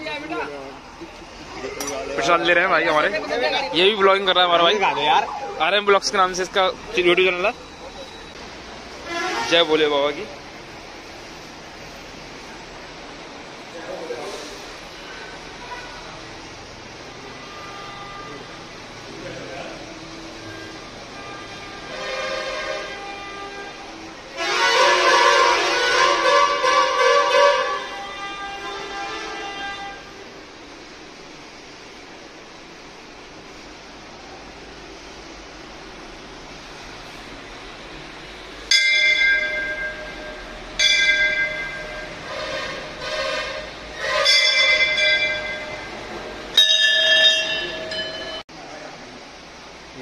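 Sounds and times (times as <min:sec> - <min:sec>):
brass bells ringing: 0:38.7 - 0:42.3, 0:44.0 - 0:48.4.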